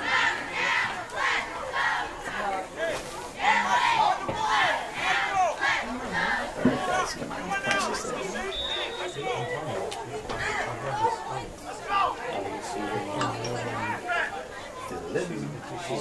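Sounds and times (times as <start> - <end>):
crowd chattering and shouting: 0.0 - 16.0.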